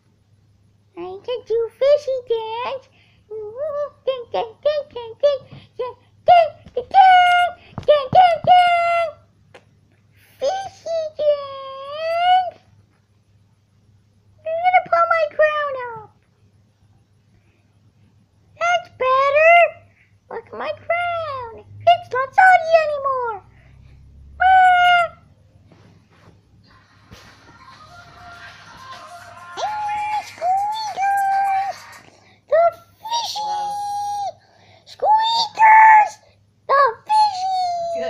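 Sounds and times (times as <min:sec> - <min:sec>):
child singing wordless notes: 0:29.0 - 0:34.4.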